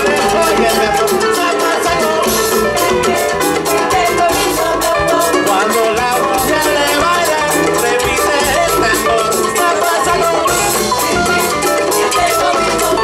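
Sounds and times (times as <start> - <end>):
band playing: 0.0 - 13.0
busy percussion rhythm: 0.0 - 13.0
voices singing: 0.0 - 13.0.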